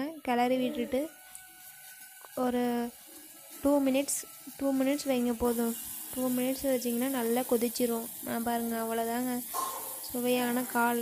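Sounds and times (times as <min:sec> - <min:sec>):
pot simmering hiss: 0:00.3 - 0:11.0.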